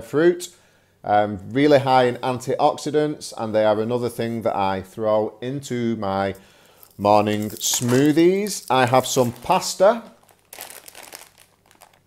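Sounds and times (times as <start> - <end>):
plastic packet crinkling: 6.6 - 12.0
small crackles: 6.6 - 12.0.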